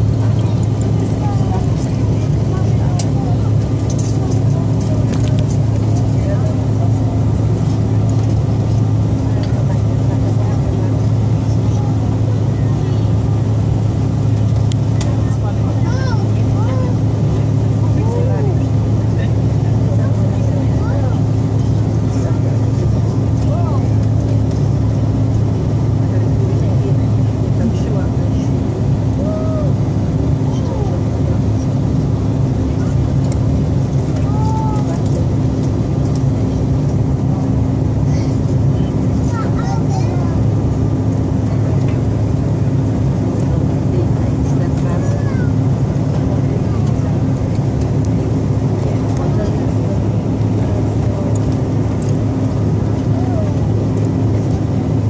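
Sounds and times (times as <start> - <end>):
airliner engine hum: 0.0 - 55.0
passengers' voices: 0.0 - 55.0.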